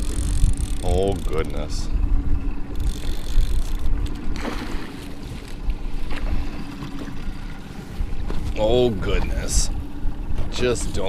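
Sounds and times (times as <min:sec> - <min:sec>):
boat motor humming: 0:00.0 - 0:11.0
wind buffeting microphone: 0:00.0 - 0:11.0.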